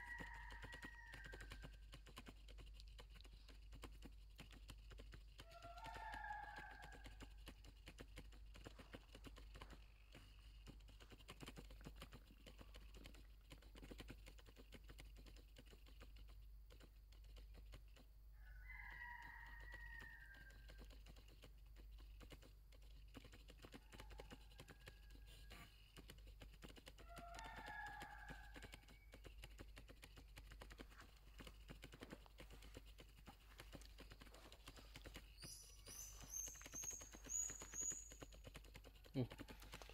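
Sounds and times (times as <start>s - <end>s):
patter of tiny clicks: 0.0s - 39.9s
distant animal calls: 34.5s - 38.4s.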